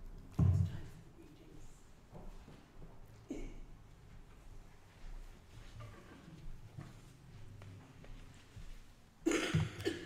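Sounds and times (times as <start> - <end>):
person coughing: 3.3 - 3.7, 9.2 - 10.0.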